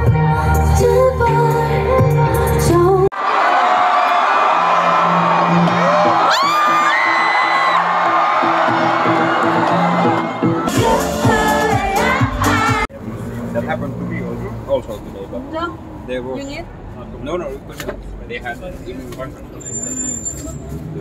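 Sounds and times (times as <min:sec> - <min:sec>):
crowd cheering and screaming: 0:03.1 - 0:12.9
rising whoops: 0:03.4 - 0:10.7
live pop music: 0:05.0 - 0:12.9.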